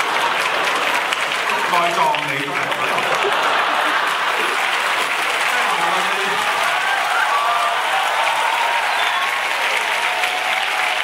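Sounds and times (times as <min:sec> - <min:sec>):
large audience applauding: 0:00.0 - 0:11.0.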